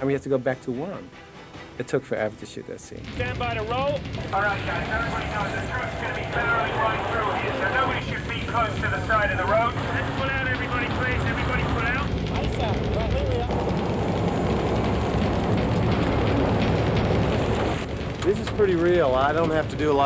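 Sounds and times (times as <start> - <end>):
truck engines: 4.0 - 20.0
voices calling out: 4.2 - 12.1.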